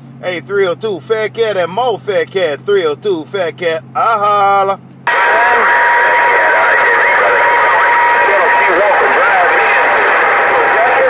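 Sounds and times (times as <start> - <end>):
faint garbled radio voices: 4.4 - 11.0
radio static: 5.1 - 11.0.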